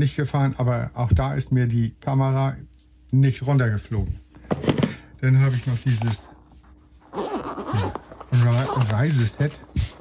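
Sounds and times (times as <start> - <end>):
zipper pulled open: 7.0 - 9.4.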